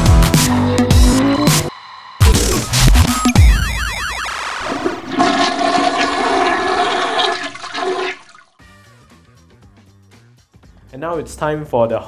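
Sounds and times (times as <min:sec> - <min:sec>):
toilet flushing: 0:04.6 - 0:08.5.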